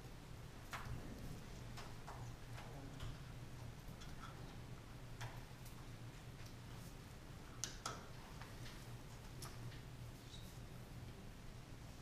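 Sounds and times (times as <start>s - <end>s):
steady low hum: 0.0s - 12.0s
faint clicks and taps: 0.6s - 6.8s, 7.6s - 9.9s.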